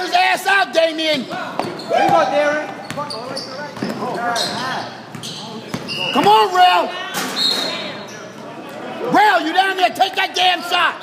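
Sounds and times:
echoing basketball game noise: 0:00.0 - 0:11.0
sneaker squeaking on wood floor: 0:01.2 - 0:06.5.

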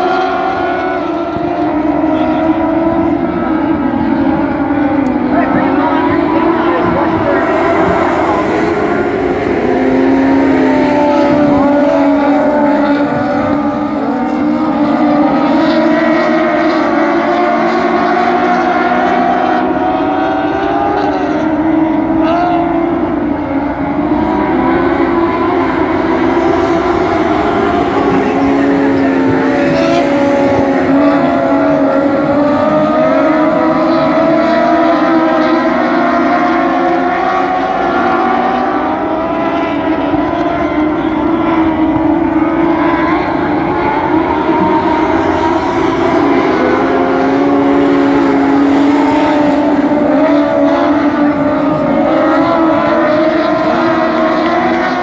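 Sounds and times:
race car engines revving: 0:00.0 - 0:55.0.

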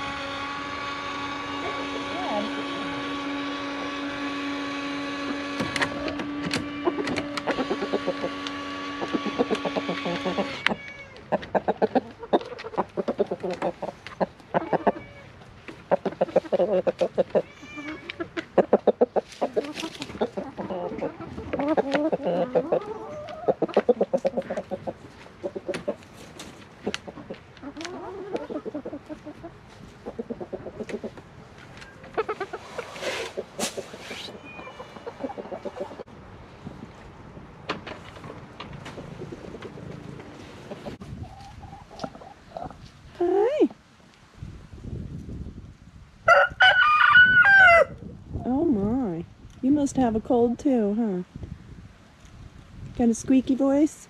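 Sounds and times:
chickens clucking: 0:00.0 - 0:36.1, 0:36.7 - 0:43.8
rooster crowing: 0:46.3 - 0:48.0.

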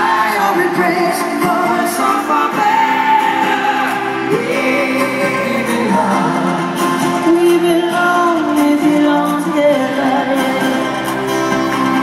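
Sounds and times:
live rock band: 0:00.0 - 0:12.0
person singing long notes: 0:00.9 - 0:11.0.

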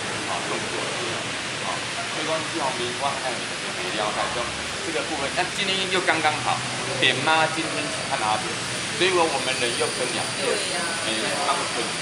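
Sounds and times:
faint crowd voices: 0:00.0 - 0:12.0
outdoor background hiss: 0:00.0 - 0:12.0.

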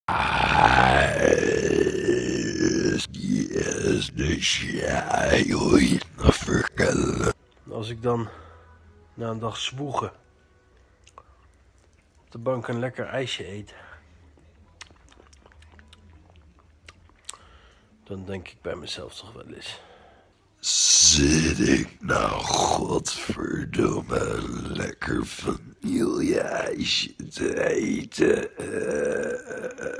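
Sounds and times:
man groaning: 0:00.1 - 0:07.4, 0:20.7 - 0:29.9
man grunting: 0:00.1 - 0:07.4, 0:20.7 - 0:29.9.

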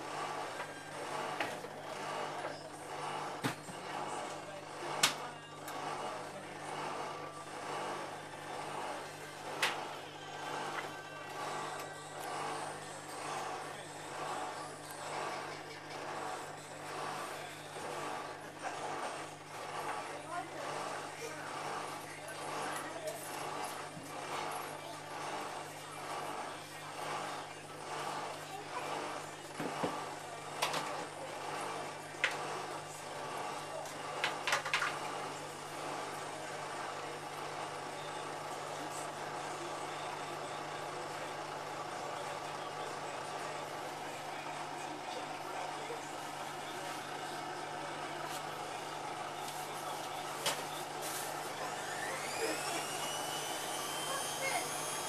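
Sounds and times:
washing machine motor hum: 0:00.0 - 0:55.0.

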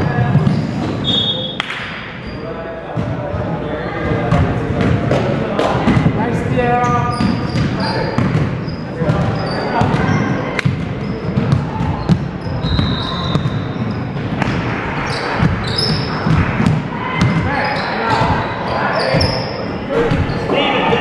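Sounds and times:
sneakers squeaking: 0:00.0 - 0:21.0.

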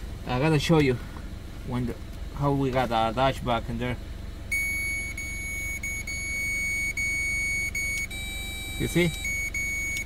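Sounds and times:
low steady hum: 0:00.0 - 0:10.0
high-pitched electronic beep: 0:04.5 - 0:10.0.

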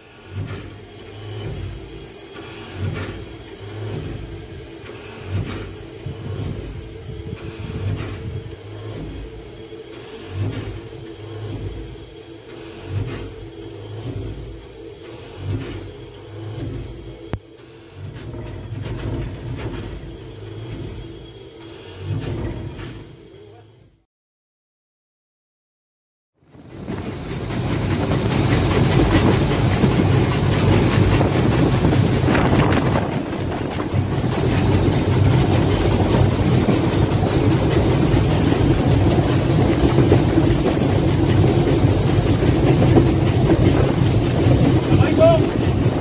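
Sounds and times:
steam locomotive cab rumble: 0:00.0 - 0:24.0, 0:26.5 - 0:46.0.

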